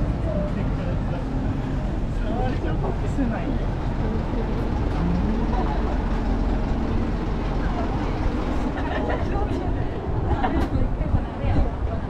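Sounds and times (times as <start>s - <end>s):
truck engine running: 0.0s - 10.2s
pedestrians' voices: 0.0s - 12.0s.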